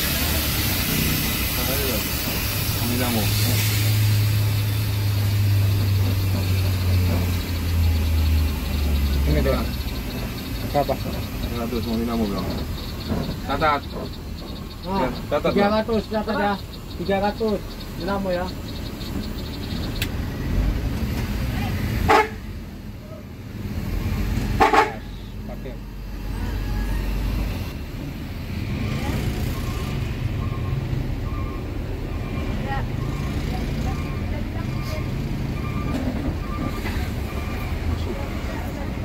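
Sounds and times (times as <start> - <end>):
diesel bus engine running: 0.0 - 39.0.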